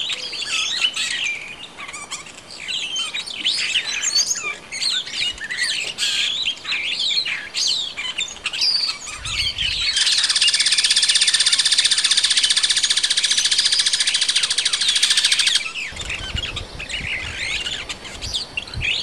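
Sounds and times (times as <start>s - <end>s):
birds chirping: 0.0s - 19.0s.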